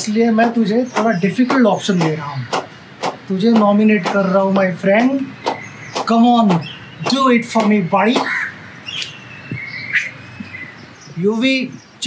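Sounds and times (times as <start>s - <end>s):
bird whistling high notes: 5.3s - 10.8s.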